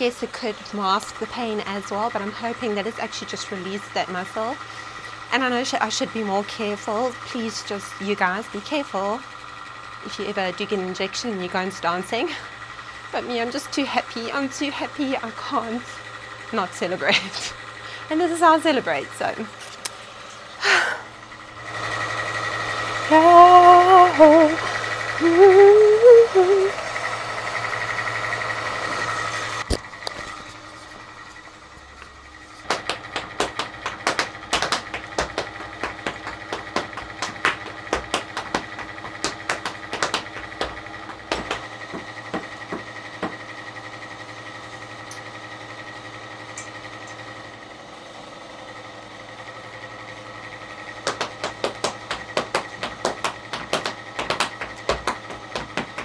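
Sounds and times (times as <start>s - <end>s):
hard shoes tapping on floor: 32.6s - 43.4s, 51.0s - 56.0s.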